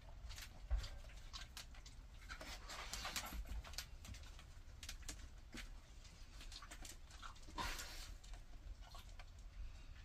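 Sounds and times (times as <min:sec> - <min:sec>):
dogs scuffing a mat: 0:02.2 - 0:03.9.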